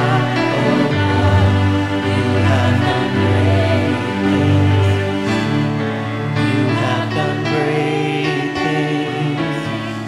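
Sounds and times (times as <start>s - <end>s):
group singing worship song: 0.0s - 10.0s
musical accompaniment: 0.0s - 10.0s.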